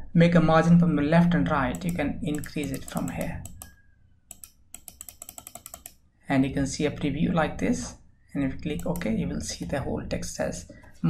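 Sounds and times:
computer mouse button clicking: 0:01.7 - 0:06.0.

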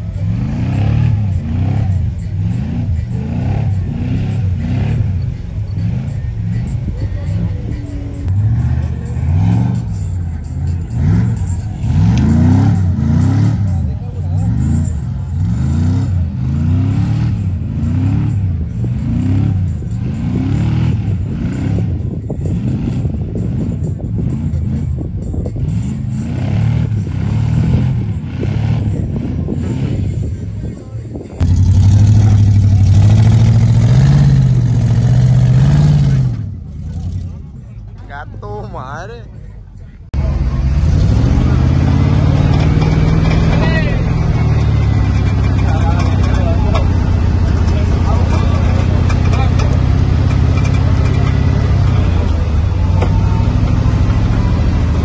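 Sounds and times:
off-road vehicle engine revving: 0:00.0 - 0:55.0.

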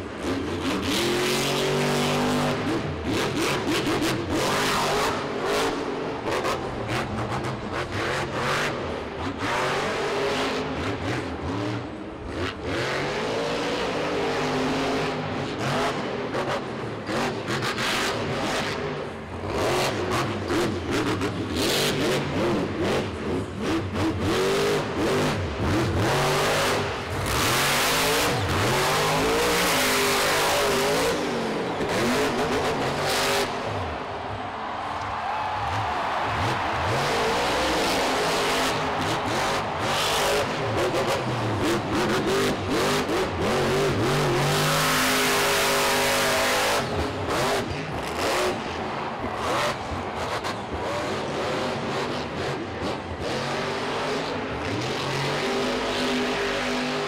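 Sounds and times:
monster truck engine revving: 0:00.0 - 0:34.8, 0:35.6 - 0:57.0.

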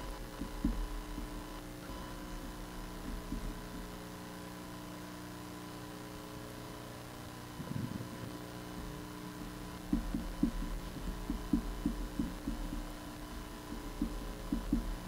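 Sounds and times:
electrical hum: 0:00.0 - 0:15.0
muffled low thuds: 0:00.1 - 0:04.0, 0:07.6 - 0:15.0.

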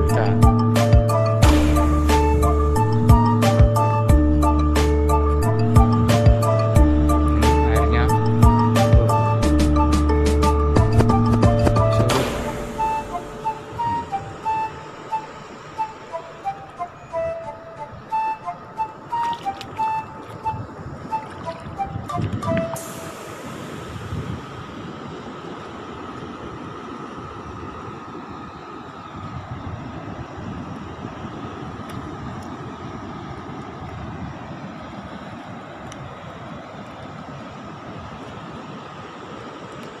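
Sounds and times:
background music melody: 0:00.0 - 0:23.1
surf rushing: 0:00.0 - 0:40.0.

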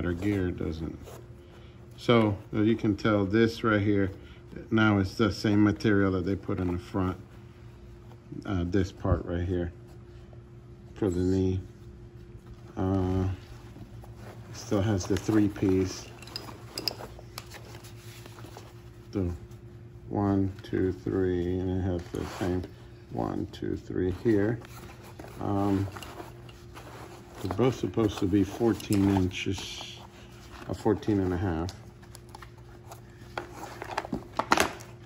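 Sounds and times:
faint steady hum: 0:00.0 - 0:35.0
rustling of straps and padding: 0:00.0 - 0:35.0.

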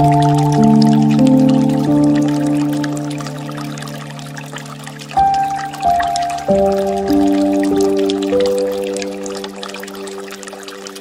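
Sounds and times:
held piano chord: 0:00.0 - 0:11.0
water trickling and dripping: 0:00.0 - 0:11.0.

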